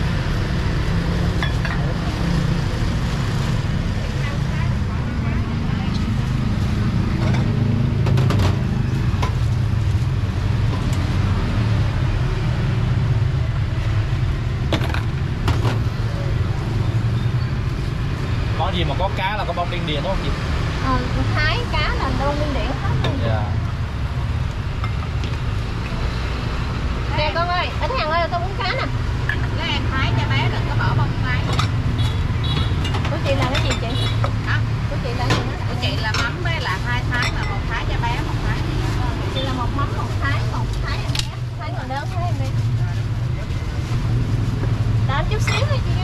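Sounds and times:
motorbike traffic rumble: 0.0 - 46.0.

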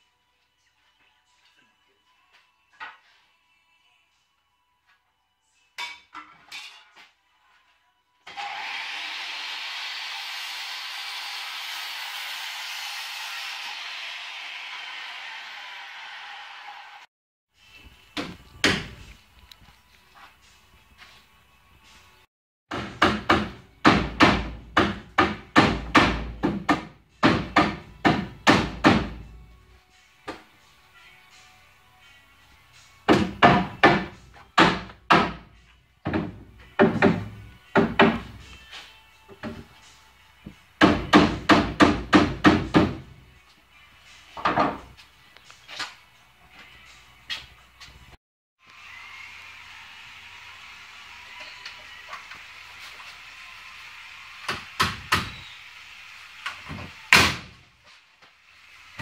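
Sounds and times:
circular saw cutting wood: 8.3 - 17.1, 48.6 - 54.4
hammer blows on wooden boards: 22.7 - 29.2, 36.1 - 38.4, 40.8 - 43.1.

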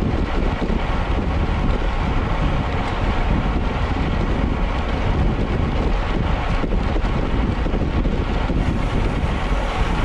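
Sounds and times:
bike tyres on asphalt: 0.0 - 10.0
wind noise on microphone: 0.0 - 10.0.

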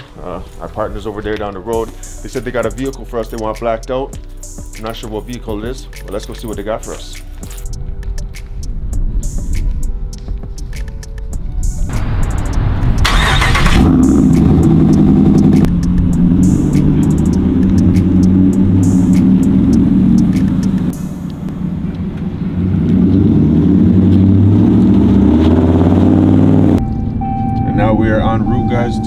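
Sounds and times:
truck engine starting and running: 10.3 - 29.0.

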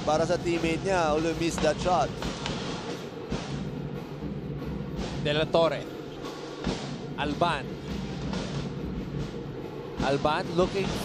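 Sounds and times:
drumming: 0.0 - 11.0.

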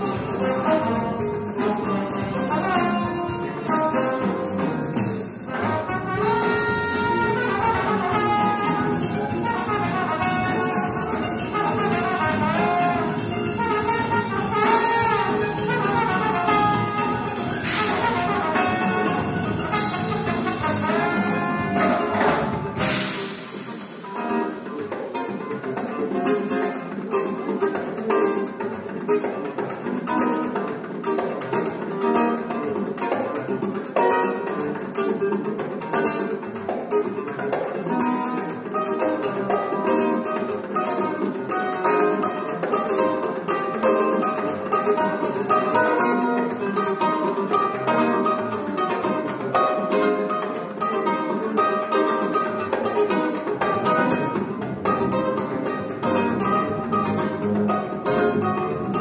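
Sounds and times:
congas: 0.0 - 59.0
drum kit: 0.0 - 59.0
plucked acoustic strings: 0.0 - 59.0
electric bass: 3.8 - 23.7.

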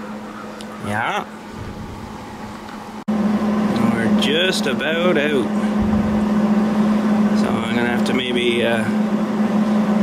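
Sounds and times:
low mechanical hum: 0.0 - 10.0.

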